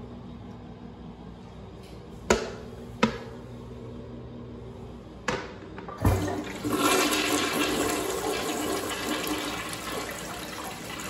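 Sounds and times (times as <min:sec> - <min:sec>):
toilet flushing water rush: 0:05.9 - 0:11.0.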